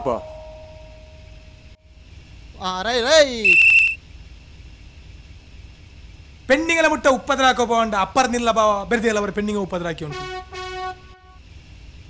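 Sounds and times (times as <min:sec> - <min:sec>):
man's drawn-out call: 0:03.3 - 0:04.0, 0:10.1 - 0:11.3
shrill pea whistle trill: 0:03.4 - 0:04.0.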